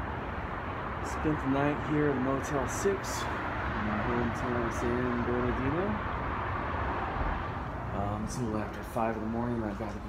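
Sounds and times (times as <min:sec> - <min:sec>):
distant traffic hum: 0:00.0 - 0:10.0.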